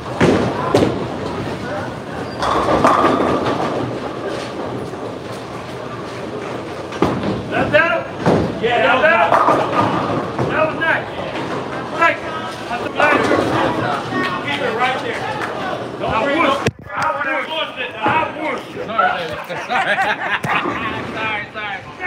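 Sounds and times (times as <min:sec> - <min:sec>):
bowling balls and pins clattering: 0:00.0 - 0:14.4, 0:20.3 - 0:21.2
voices chattering: 0:07.5 - 0:22.0.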